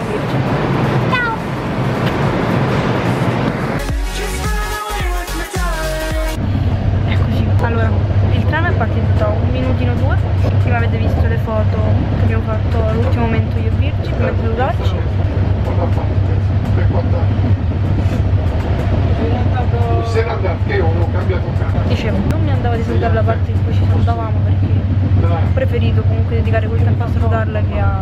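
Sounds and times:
train running low rumble: 0:00.0 - 0:03.9, 0:05.9 - 0:28.0.

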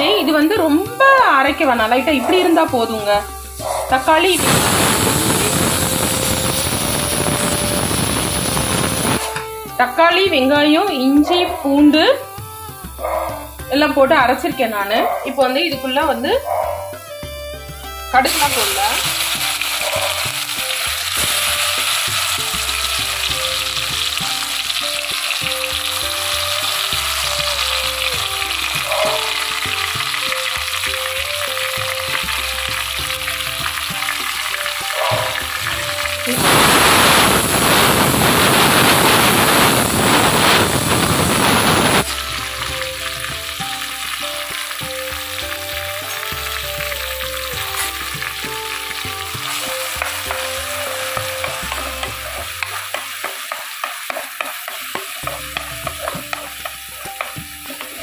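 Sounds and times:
loud hiss: 0:00.0 - 0:16.2, 0:16.9 - 0:58.0
soft background melody: 0:00.0 - 0:58.0
vegetables sizzling in oil: 0:00.0 - 0:58.0
spatula scraping pan: 0:51.5 - 0:58.0.

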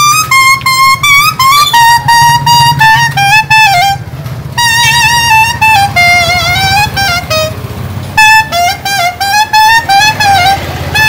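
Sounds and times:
bamboo flute melody: 0:00.0 - 0:11.0
low steady rumble: 0:00.0 - 0:11.0.

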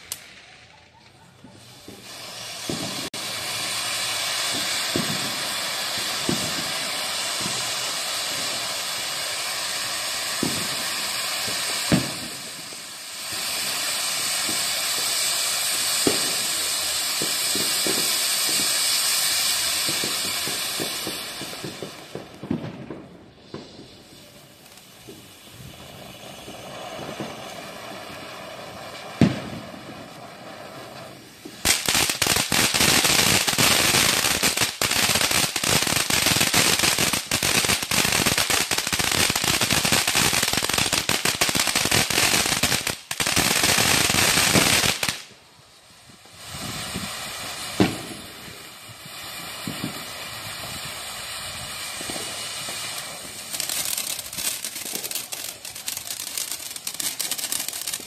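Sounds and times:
fireworks crackling: 0:00.0 - 0:58.0
firework bang: 0:01.8 - 0:03.7, 0:04.4 - 0:07.6, 0:19.8 - 0:24.2, 0:25.0 - 0:45.2, 0:46.4 - 0:50.9.

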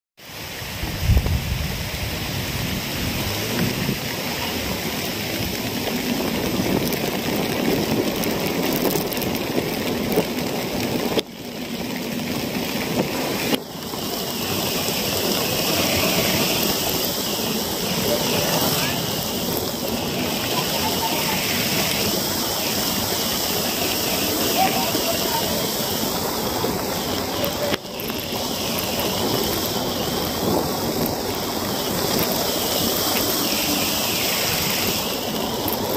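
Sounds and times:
heavy rain: 0:00.2 - 0:35.9.

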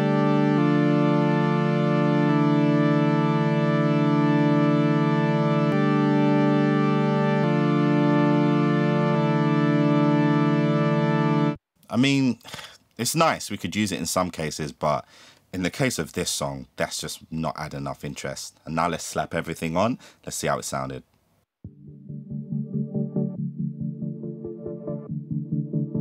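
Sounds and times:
synthesizer sustained chords: 0:00.0 - 0:11.6, 0:21.7 - 0:26.0.

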